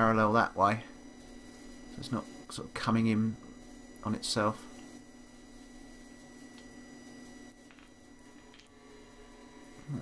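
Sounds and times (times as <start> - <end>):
faint electrical hum: 0.0 - 10.0
thin high whine: 0.0 - 10.0.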